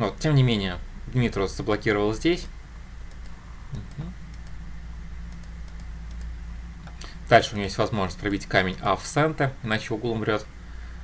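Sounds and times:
low electrical hum: 0.0 - 11.0
light computer clicks: 2.4 - 4.6, 5.3 - 7.2, 8.1 - 9.0.

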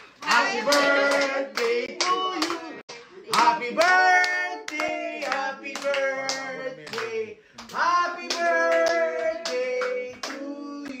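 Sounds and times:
people singing together: 0.0 - 11.0.

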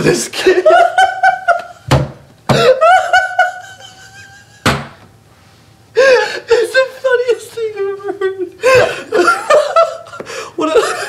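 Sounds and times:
men laughing hard: 0.4 - 1.9, 2.5 - 5.0, 8.6 - 11.0.

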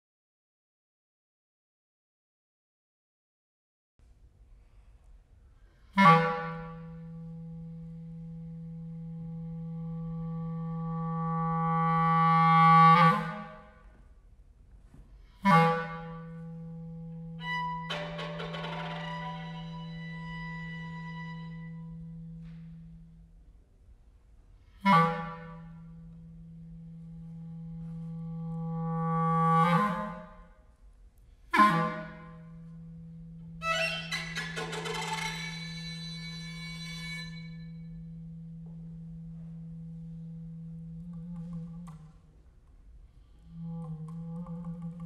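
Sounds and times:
clarinet long low note: 5.9 - 13.8, 15.4 - 23.4, 24.8 - 30.6, 31.5 - 34.3, 35.3 - 42.2, 43.4 - 45.0.

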